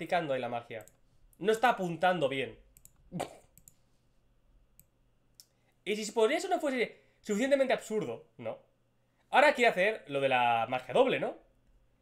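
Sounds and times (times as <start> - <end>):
man speaking: 0.0 - 3.3, 5.8 - 8.7, 9.3 - 11.5.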